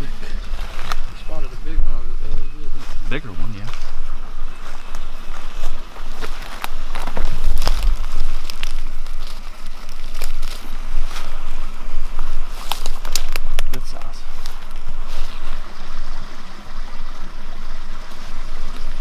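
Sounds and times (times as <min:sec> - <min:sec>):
footsteps in dry leaves: 0:00.0 - 0:01.4, 0:02.7 - 0:15.8
leafy brush rustling: 0:00.0 - 0:19.0
steady low rumble: 0:00.0 - 0:19.0
twigs snapping and crackling: 0:04.8 - 0:11.4, 0:12.2 - 0:14.9.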